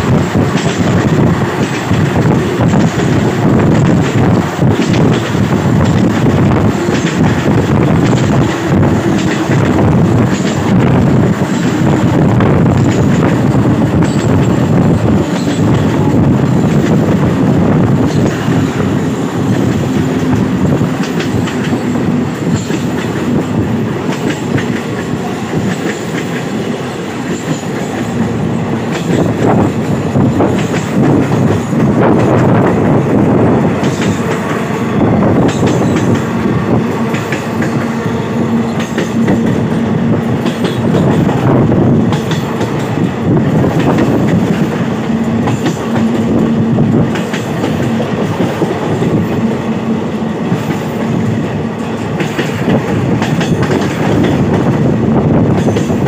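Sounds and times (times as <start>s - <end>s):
train wheels rumbling on rail: 0.0s - 56.0s
clicking rail joints: 0.1s - 49.6s, 50.4s - 56.0s.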